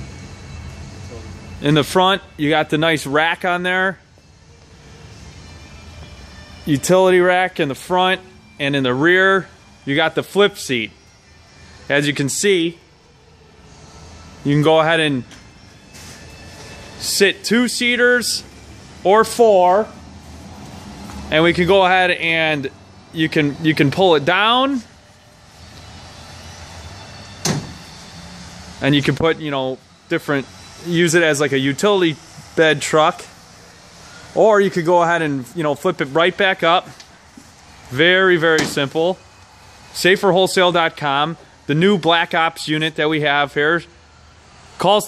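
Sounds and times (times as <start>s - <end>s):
seat folding down clunk: 27.4s - 27.9s.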